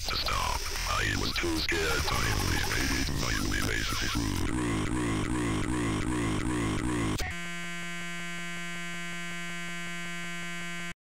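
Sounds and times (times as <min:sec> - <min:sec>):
glitched electronic stuttering: 0:00.0 - 0:07.4
harsh electronic buzz: 0:00.0 - 0:11.0.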